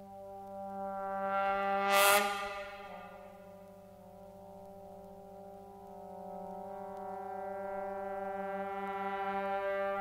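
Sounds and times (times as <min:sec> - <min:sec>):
brass section holding a chord: 0:01.9 - 0:03.4.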